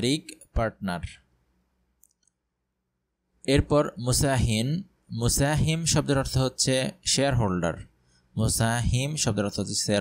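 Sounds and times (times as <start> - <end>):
person speaking: 0.0 - 1.4, 3.4 - 10.0
computer mouse click: 2.0 - 2.4.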